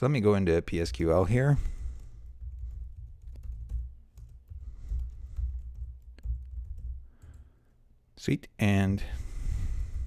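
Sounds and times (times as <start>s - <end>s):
keyboard typing: 1.6s - 7.5s.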